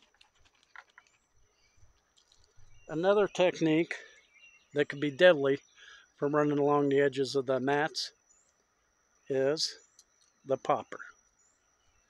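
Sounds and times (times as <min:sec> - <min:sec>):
thin steady high tone: 0:01.4 - 0:12.0.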